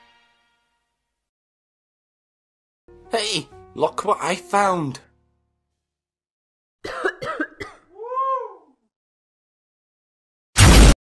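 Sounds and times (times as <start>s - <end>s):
person coughing: 6.8s - 7.9s.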